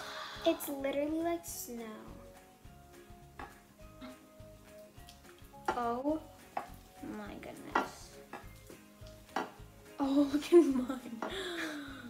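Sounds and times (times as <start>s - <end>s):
spatulas stirring wet slime: 3.0s - 11.5s
spatula knocking against dish: 9.3s - 9.7s.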